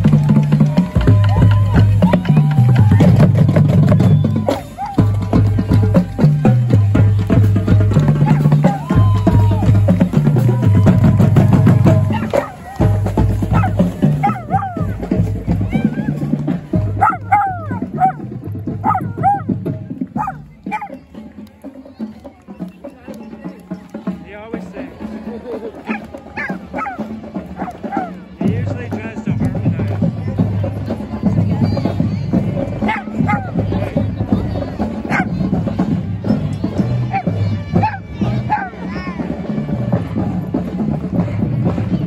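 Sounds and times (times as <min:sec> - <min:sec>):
music: 0:00.0 - 0:42.0
small dog barking: 0:12.1 - 0:12.6, 0:13.5 - 0:15.0, 0:17.0 - 0:18.2, 0:18.8 - 0:19.5, 0:20.2 - 0:21.0, 0:25.9 - 0:27.0, 0:27.6 - 0:28.1, 0:32.9 - 0:33.5, 0:35.1 - 0:35.3.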